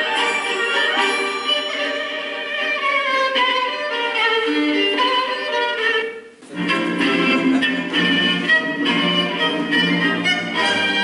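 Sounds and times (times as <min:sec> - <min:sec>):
orchestral string music: 0:00.0 - 0:11.0.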